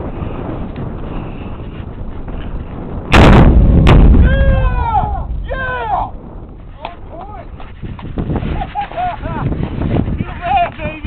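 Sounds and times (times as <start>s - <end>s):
rocket launcher blast: 3.0s - 6.6s
sharp impact crack: 3.1s - 5.6s.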